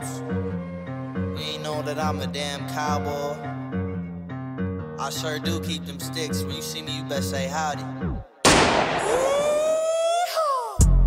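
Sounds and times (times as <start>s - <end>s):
music: 0.0s - 8.4s, 10.8s - 11.0s
loud burst: 8.4s - 9.7s.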